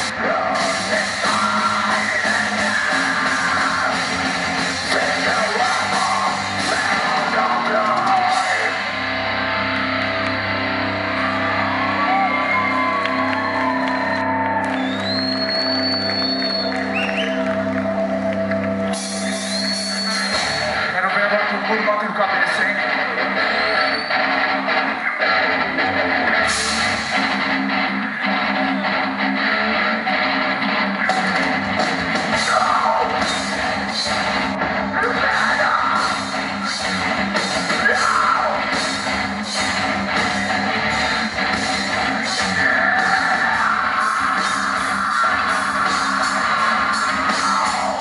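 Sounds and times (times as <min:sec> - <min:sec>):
steady drum beat: 0:00.0 - 0:08.8, 0:31.1 - 0:48.0
metalcore band playing: 0:00.0 - 0:15.2, 0:16.8 - 0:48.0.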